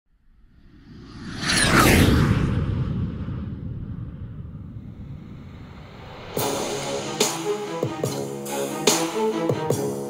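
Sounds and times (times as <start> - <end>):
deep rumbling boom: 1.0 - 7.0.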